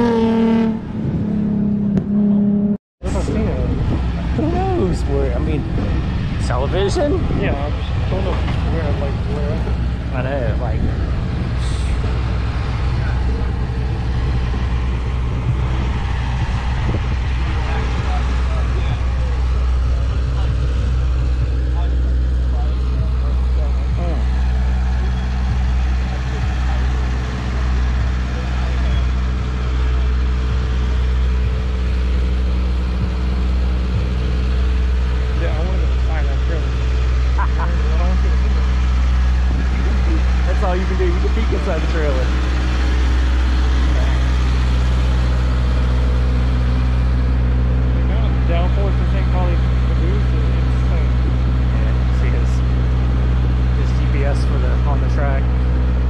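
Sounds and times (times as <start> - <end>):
background voices: 3.0 - 31.0
engine idling: 3.0 - 56.0.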